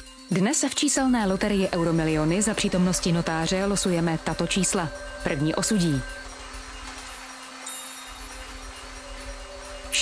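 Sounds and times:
soft sustained background music: 0.0s - 10.0s.

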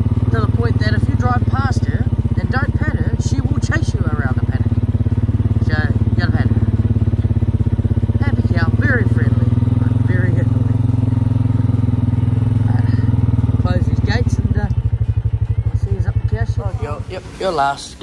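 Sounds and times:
motorbike engine running: 0.0s - 18.0s.

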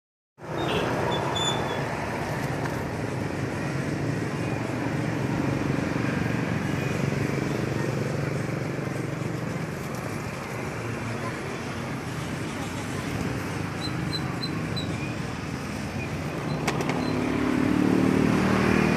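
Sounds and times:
road traffic noise: 0.4s - 18.9s.

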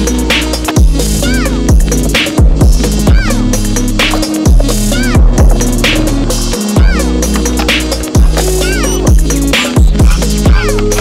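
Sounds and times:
electronic music with deep bass: 0.0s - 11.0s.

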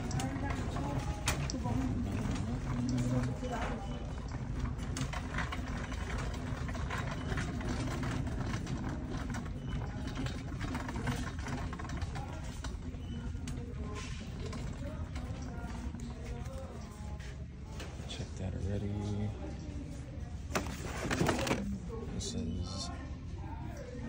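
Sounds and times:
shopping cart rattling: 0.0s - 16.8s, 20.5s - 21.8s.

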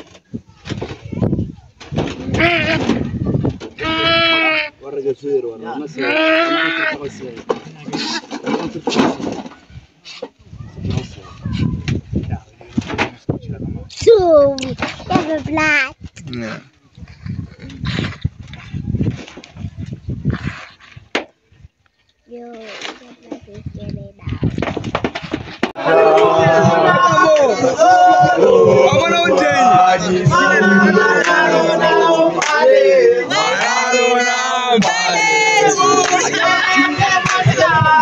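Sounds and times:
goat bleating: 2.3s - 3.0s, 3.8s - 4.7s, 6.0s - 7.0s.

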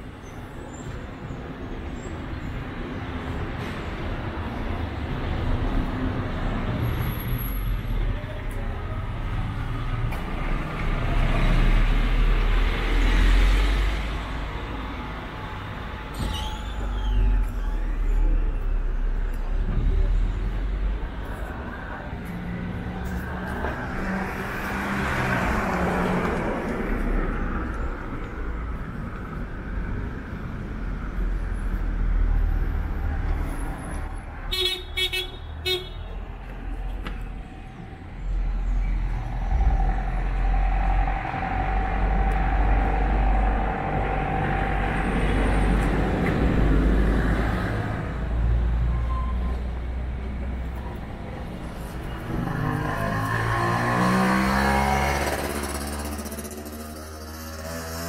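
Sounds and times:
low traffic rumble: 0.0s - 58.0s
cars passing: 1.2s - 58.0s.

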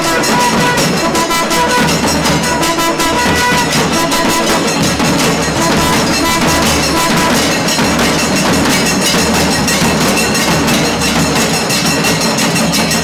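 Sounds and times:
conch and horn tones: 0.0s - 8.5s
barrel drums and hand cymbals: 0.0s - 13.0s.

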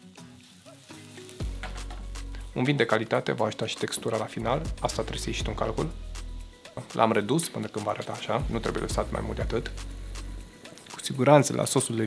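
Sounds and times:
soft background music: 0.0s - 12.0s
wine sizzling in frying pan: 0.0s - 12.0s.

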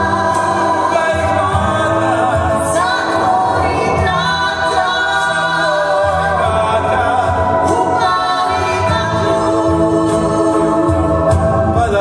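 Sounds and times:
band accompaniment with bass: 0.0s - 12.0s
male and female voices singing: 0.0s - 12.0s.

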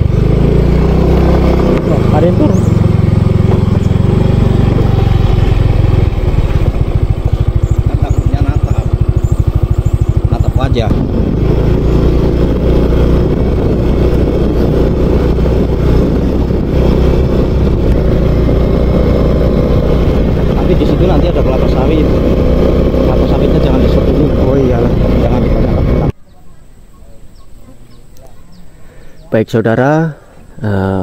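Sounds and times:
motorcycle engine running: 0.0s - 26.2s
outdoor background: 0.0s - 31.0s.

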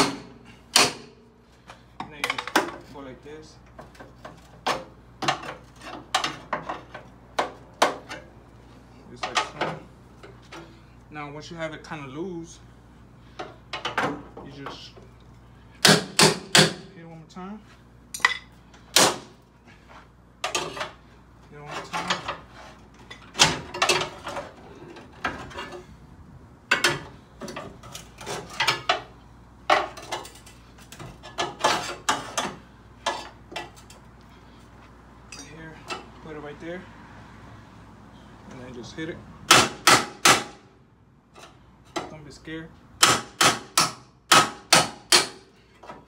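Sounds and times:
hammer striking metal bar: 0.0s - 1.1s, 15.8s - 16.8s, 39.5s - 40.6s, 43.0s - 45.4s.

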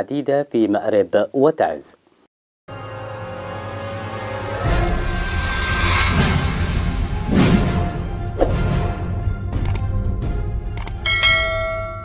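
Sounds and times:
outro music with steady bass: 2.7s - 11.5s
mouse-click sound effects: 9.6s - 9.9s, 10.8s - 11.0s
bright bell chime: 11.0s - 12.0s.

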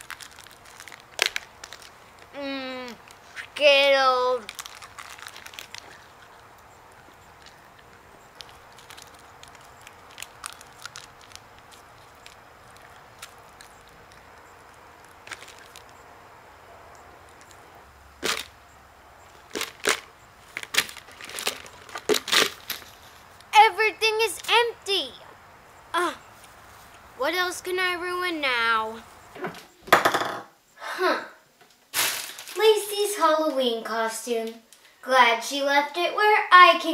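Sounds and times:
candy being eaten: 0.0s - 16.0s, 17.1s - 18.5s, 19.3s - 23.5s
candy packet crackling: 0.0s - 16.2s, 17.0s - 18.5s, 19.3s - 24.7s, 32.0s - 32.9s.

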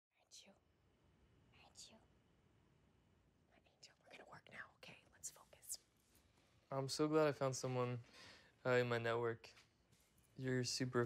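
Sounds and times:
faint whispering: 0.1s - 0.7s, 1.5s - 2.1s, 3.5s - 5.9s.

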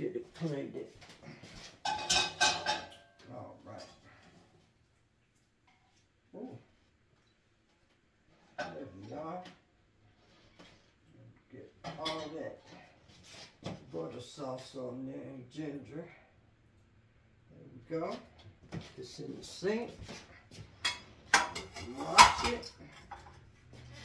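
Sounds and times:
plates and cutlery clattering: 1.8s - 3.2s, 11.8s - 12.8s, 20.8s - 24.0s.

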